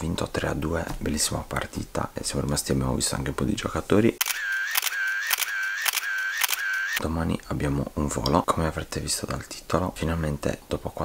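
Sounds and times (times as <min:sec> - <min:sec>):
camera shutter clicks and whir: 0:04.2 - 0:07.0.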